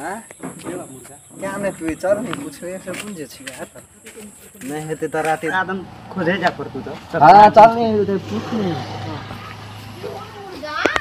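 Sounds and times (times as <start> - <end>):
man speaking: 0.0 - 3.9, 4.6 - 9.3.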